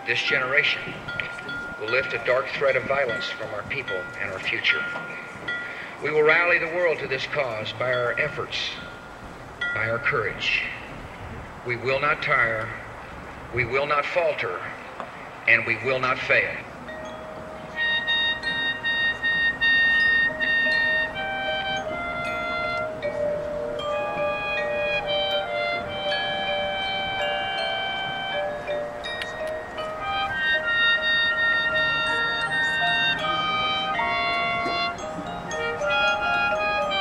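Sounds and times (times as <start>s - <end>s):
bell-like percussion notes: 0.0s - 11.1s, 16.2s - 37.0s
marching band sustained chords: 0.0s - 37.0s.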